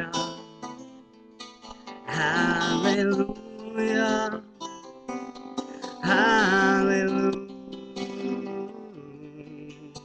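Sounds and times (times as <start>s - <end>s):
person singing: 0.0s - 0.8s, 1.9s - 4.8s, 5.6s - 10.0s
guitar strumming chords: 0.0s - 10.0s.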